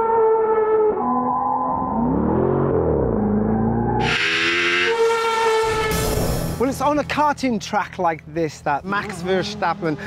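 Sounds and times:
racing car engine whine: 0.9 - 6.6.

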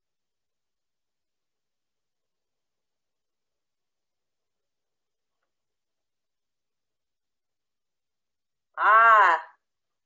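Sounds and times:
woman's wordless vocal exclamation: 8.8 - 9.6.

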